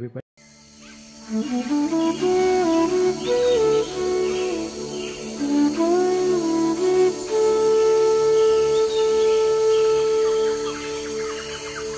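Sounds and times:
birds chirping: 0:00.7 - 0:11.9
flute long note: 0:01.2 - 0:11.9.

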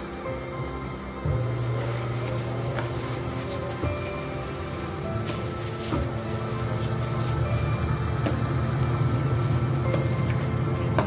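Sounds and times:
water boiling in steamer: 0:00.0 - 0:11.0.

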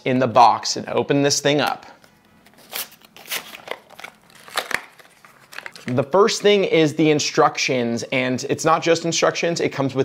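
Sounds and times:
cardboard box rustling: 0:02.6 - 0:06.0.

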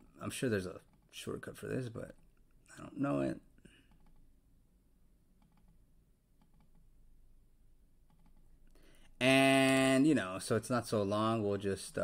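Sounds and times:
faint computer mouse and keyboard clicks: 0:03.6 - 0:04.3, 0:05.4 - 0:07.0, 0:08.0 - 0:08.8.

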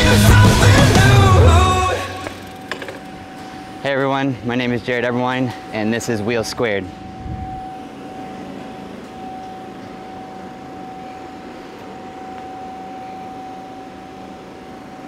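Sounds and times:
mechanical hum with hiss: 0:01.6 - 0:15.0.

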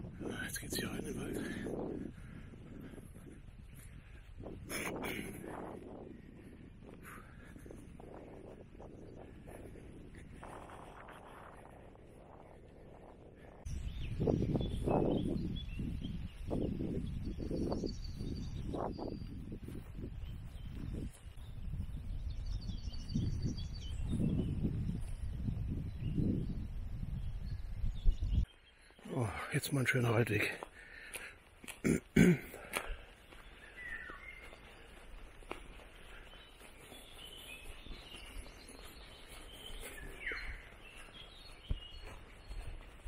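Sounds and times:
wind buffeting microphone: 0:00.0 - 0:43.0
birds chirping faintly: 0:00.2 - 0:43.0.

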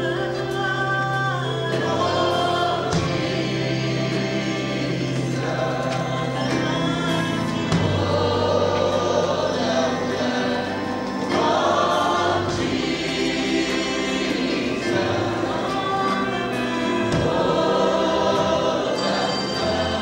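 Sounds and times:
band playing: 0:00.0 - 0:20.0
choir singing gospel song: 0:00.0 - 0:20.0.

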